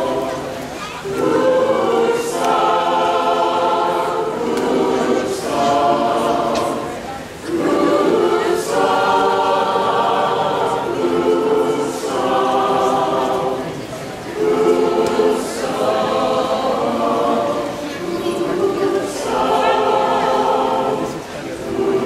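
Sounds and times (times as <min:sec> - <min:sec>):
mixed choir singing: 0:00.0 - 0:22.0.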